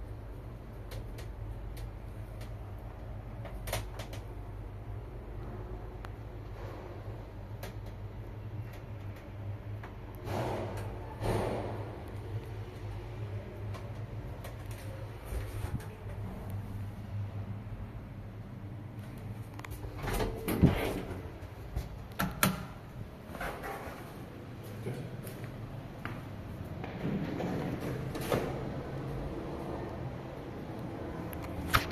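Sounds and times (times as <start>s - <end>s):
elevator doors clattering: 26.8s - 29.4s.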